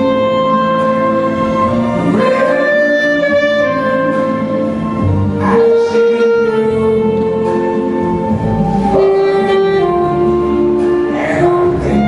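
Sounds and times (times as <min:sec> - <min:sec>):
saxophone long note: 0:00.0 - 0:12.0.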